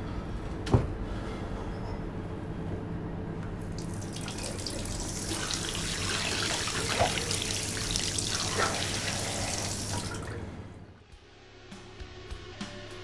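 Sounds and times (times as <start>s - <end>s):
tap water running into basin: 3.6s - 10.5s
water splashing: 3.7s - 10.5s.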